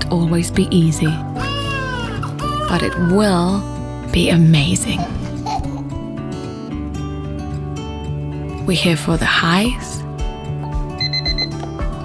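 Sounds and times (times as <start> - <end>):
gentle background music: 0.0 - 12.0
electronic alarm beeping: 11.0 - 11.6.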